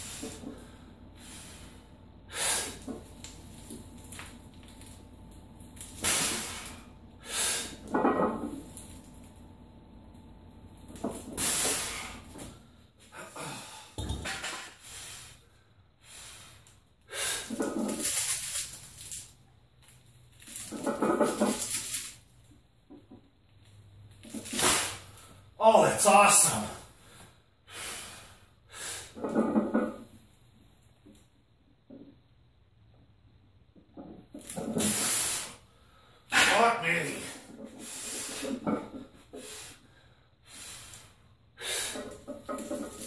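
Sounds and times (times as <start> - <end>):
loud strained breath: 0.0 - 3.0, 6.0 - 7.9, 11.4 - 14.0, 39.3 - 42.2
forceful breaths: 0.0 - 4.5, 11.1 - 14.0.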